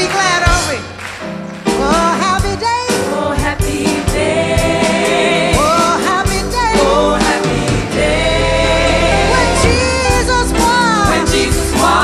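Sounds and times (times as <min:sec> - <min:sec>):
piano bass and drums: 0:00.0 - 0:12.0
gospel choir singing: 0:01.8 - 0:12.0
woman singing lead: 0:05.6 - 0:12.0.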